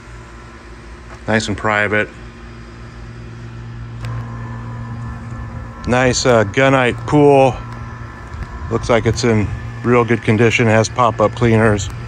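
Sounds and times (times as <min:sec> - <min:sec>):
low mechanical hum: 0:00.0 - 0:12.0
outdoor background noise: 0:00.0 - 0:12.0.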